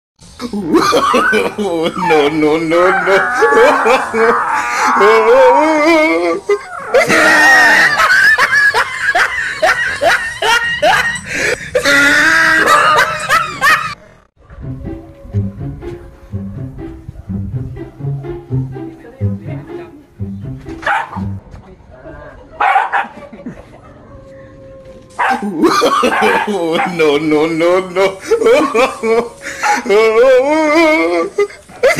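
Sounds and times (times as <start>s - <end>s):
person laughing hard: 0.4s - 14.0s, 25.3s - 31.9s
background music: 14.4s - 21.5s
dog barking: 20.8s - 21.2s, 22.6s - 23.2s, 25.2s - 25.4s.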